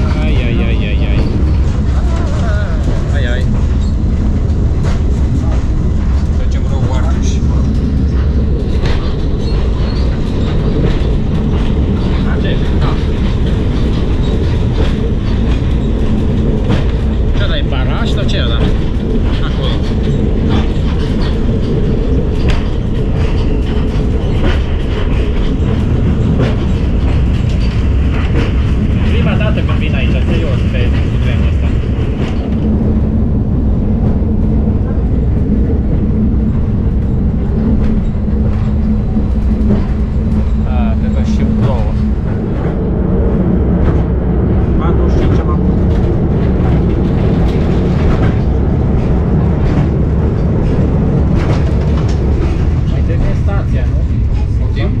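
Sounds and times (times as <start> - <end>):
harsh high bridge noise: 0.0 - 55.0
rail joint clicks: 0.0 - 55.0
railcar engine and wheels rumbling: 0.0 - 55.0.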